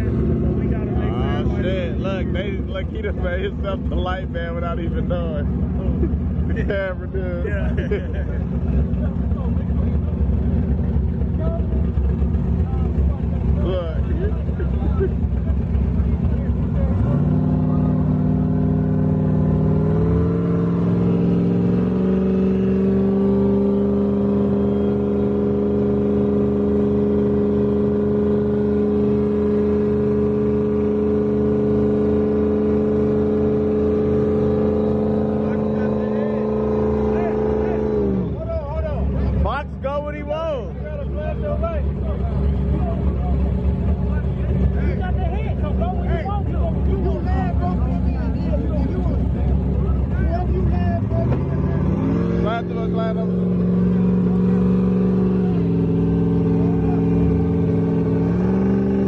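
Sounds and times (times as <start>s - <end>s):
car engine revving: 0.0s - 59.0s.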